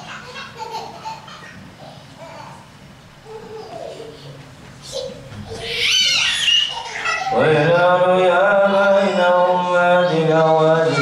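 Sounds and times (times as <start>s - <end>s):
toddler squealing: 4.9s - 7.4s.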